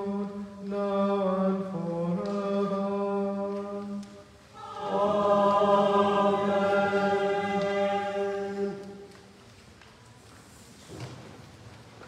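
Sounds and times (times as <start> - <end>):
choir singing chant: 4.5 - 9.1.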